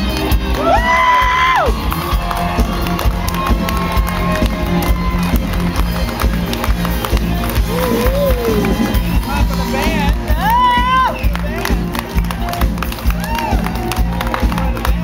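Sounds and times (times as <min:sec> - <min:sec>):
crowd cheering: 0:00.0 - 0:15.0
live band music: 0:00.0 - 0:15.0.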